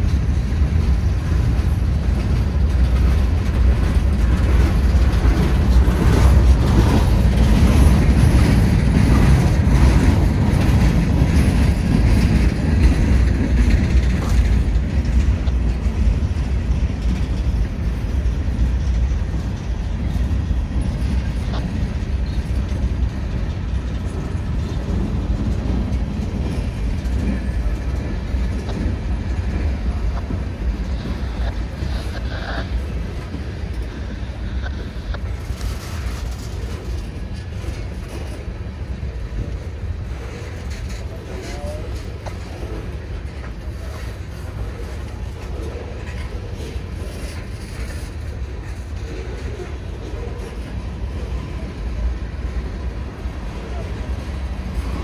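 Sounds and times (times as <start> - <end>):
freight train rumbling by: 0.0 - 55.0.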